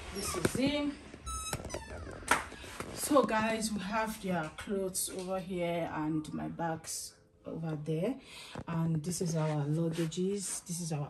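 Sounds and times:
wardrobe door squeaking: 0.2s - 2.3s.

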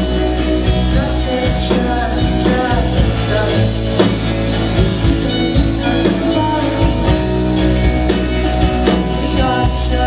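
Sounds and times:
live rock band instrumental: 0.0s - 10.0s.

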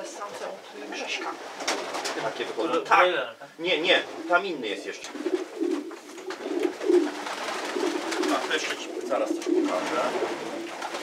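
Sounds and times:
pigeons cooing: 4.0s - 11.0s.

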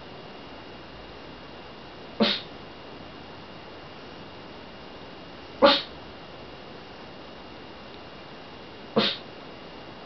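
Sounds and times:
dog barking sharply: 2.2s - 2.5s, 5.6s - 5.9s, 9.0s - 9.2s.

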